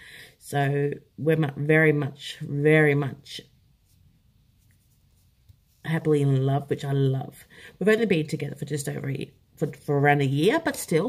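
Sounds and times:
woman's voice: 0.4s - 3.5s, 5.8s - 11.0s.

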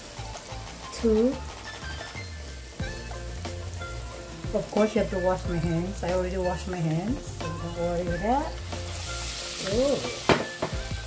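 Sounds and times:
background music: 0.0s - 11.0s
chicken sizzling in deep fryer: 0.0s - 11.0s.

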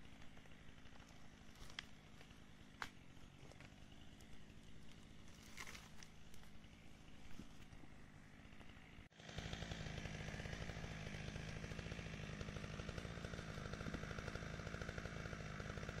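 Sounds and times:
chainsaw engine running: 0.0s - 16.0s.

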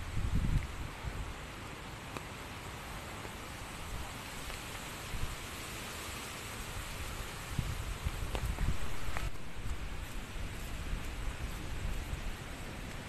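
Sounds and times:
wind rumbling on microphone: 0.0s - 1.6s, 3.6s - 5.6s, 6.6s - 13.0s
rain falling: 0.0s - 13.0s.

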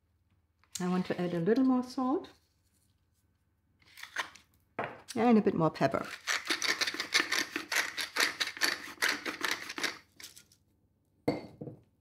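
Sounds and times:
pepper mill grinding: 6.0s - 10.6s.

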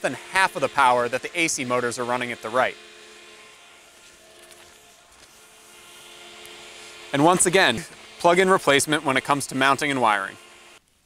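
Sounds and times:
fans whirring: 0.0s - 10.8s.

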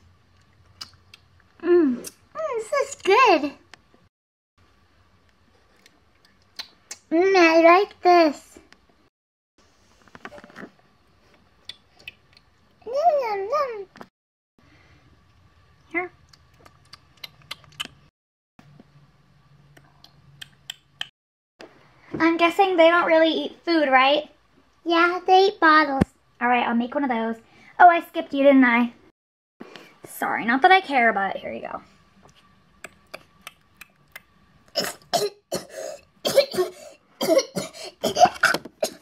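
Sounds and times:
girl coughing: 34.8s - 39.0s.

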